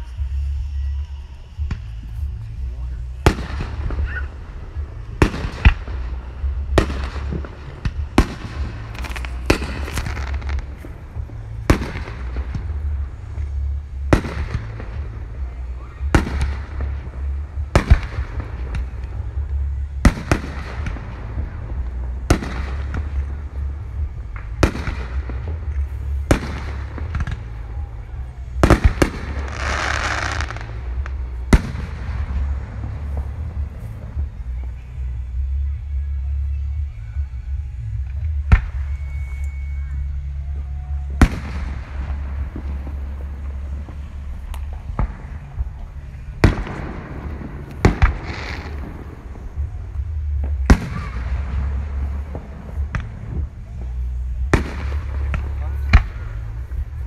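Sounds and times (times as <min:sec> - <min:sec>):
fireworks hissing: 0:00.0 - 0:36.8, 0:37.5 - 0:57.0
low rumble: 0:00.0 - 0:57.0
firework shells bursting: 0:03.1 - 0:34.3.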